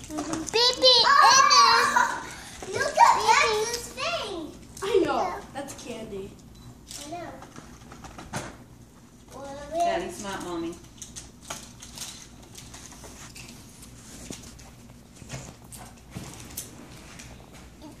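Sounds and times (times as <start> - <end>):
child's high-pitched vocalisation: 0.6 - 3.7.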